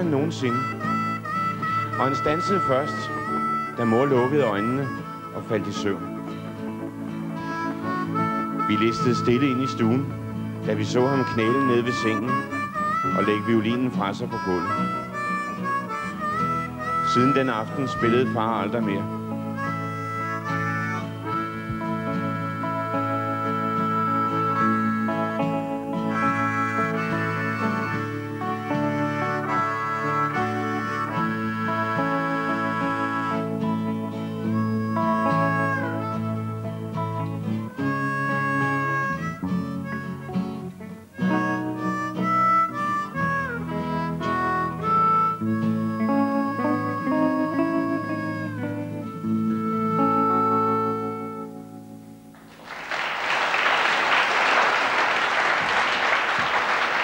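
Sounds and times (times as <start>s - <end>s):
acoustic guitar: 0.0s - 57.0s
harmonica melody: 0.0s - 57.0s.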